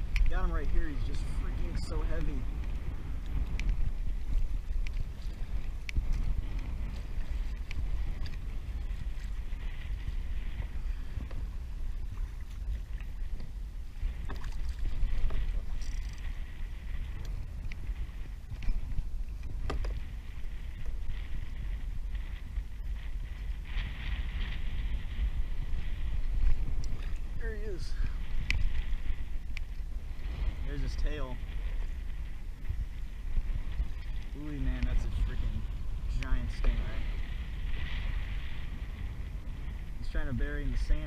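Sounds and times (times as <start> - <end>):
water lapping against kayak hull: 0.0 - 41.0
wind buffeting microphone: 0.0 - 41.0.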